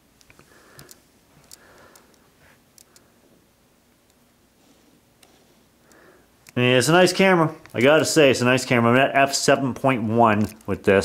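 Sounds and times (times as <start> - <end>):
soft rustles: 4.4 - 5.9.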